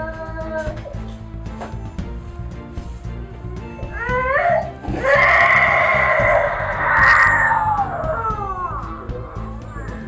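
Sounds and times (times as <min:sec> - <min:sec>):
toddler crying: 0:00.0 - 0:00.9, 0:03.8 - 0:09.3.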